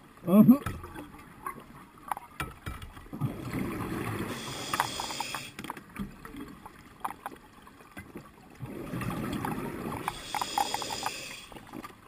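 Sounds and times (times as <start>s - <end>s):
diver breathing through regulator: 4.3s - 5.6s, 10.1s - 11.6s.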